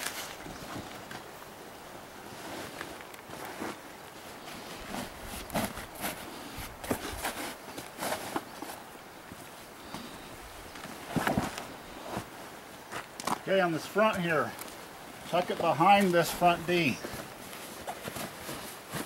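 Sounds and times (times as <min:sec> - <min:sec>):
canvas pack gear rustling: 0:00.0 - 0:19.0.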